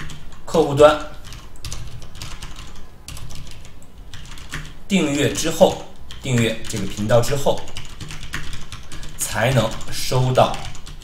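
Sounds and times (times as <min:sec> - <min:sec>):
keyboard typing clicks: 0:00.0 - 0:00.4, 0:01.2 - 0:04.8.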